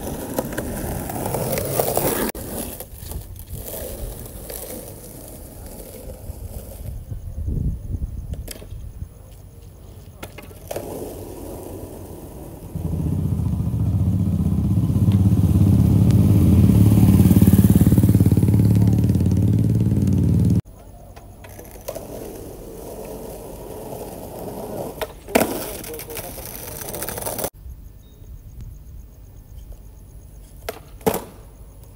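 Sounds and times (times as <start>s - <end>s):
skateboard clattering on asphalt: 0.0s - 7.1s, 9.9s - 12.9s, 21.2s - 27.5s, 30.6s - 31.9s
motorcycle engine running: 12.7s - 20.6s.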